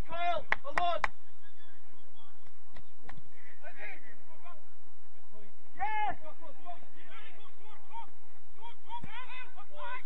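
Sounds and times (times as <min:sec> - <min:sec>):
man shouting: 0:00.0 - 0:01.0, 0:05.8 - 0:10.0
sharp claps: 0:00.4 - 0:01.2, 0:02.4 - 0:03.2.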